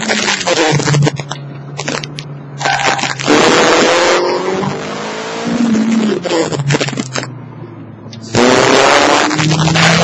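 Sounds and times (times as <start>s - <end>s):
car engine pulling hard: 0.0s - 10.0s
loud rush of noise: 0.0s - 10.0s.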